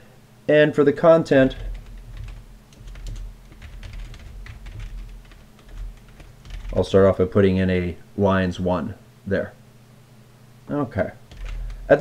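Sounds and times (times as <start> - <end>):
keyboard typing: 1.4 - 7.2, 11.3 - 12.0.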